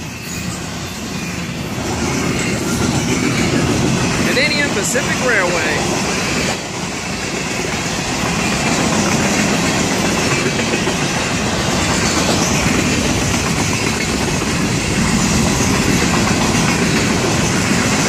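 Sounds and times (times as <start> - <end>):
freight train wheels rolling on rails: 0.0 - 18.0.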